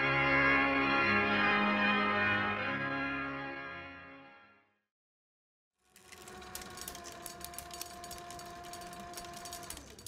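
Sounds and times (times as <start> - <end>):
rapid clicking and crackle: 5.9 - 10.0
reel machine whirring: 6.0 - 10.0.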